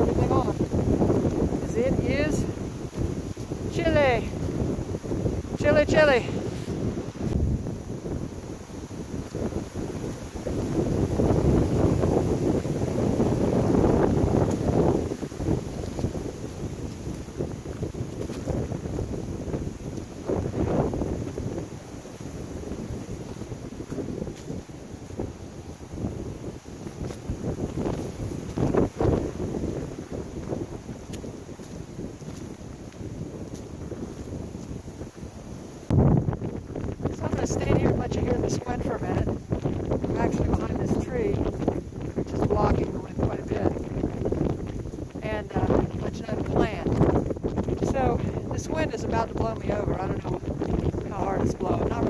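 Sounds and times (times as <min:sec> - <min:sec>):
gusty wind buffeting microphone: 0:00.0 - 0:52.0.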